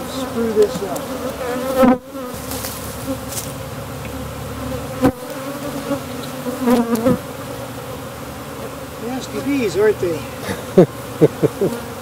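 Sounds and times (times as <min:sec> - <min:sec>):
bee flying past: 0:00.0 - 0:12.0
bees buzzing: 0:00.0 - 0:12.0.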